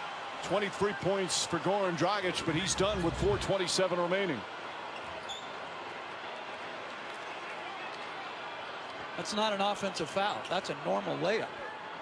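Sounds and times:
basketball arena crowd noise: 0:00.0 - 0:12.0.

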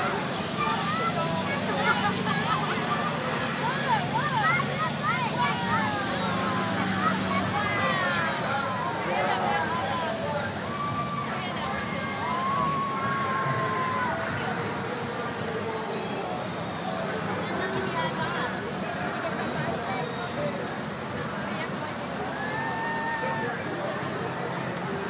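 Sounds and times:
street crowd cheering: 0:00.0 - 0:25.0.

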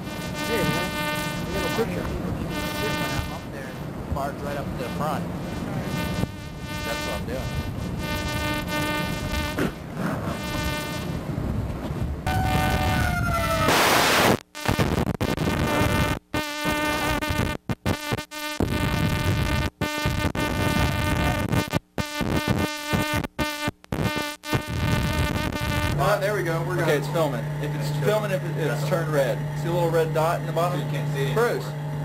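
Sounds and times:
steady buzz: 0:00.0 - 0:13.0, 0:13.6 - 0:32.0.

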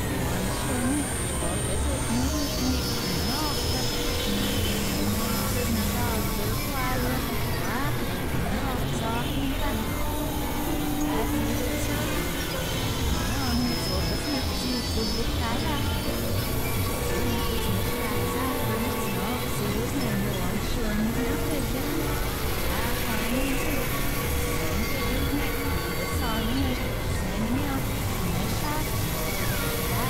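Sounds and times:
experimental synthesizer noise music: 0:00.0 - 0:30.0.

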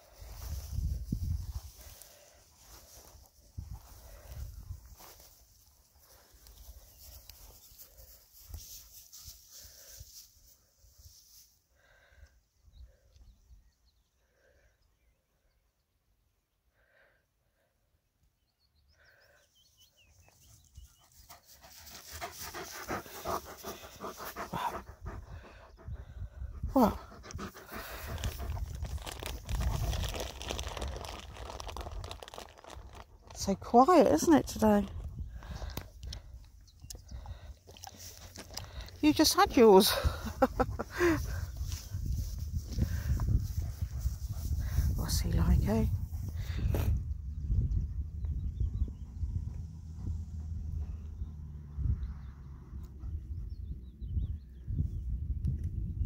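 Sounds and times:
dog panting: 0:20.9 - 0:28.8.

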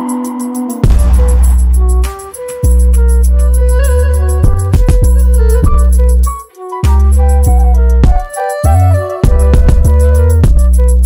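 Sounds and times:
drum roll: 0:00.8 - 0:02.5
deep bass notes: 0:00.8 - 0:06.3, 0:08.8 - 0:11.0.

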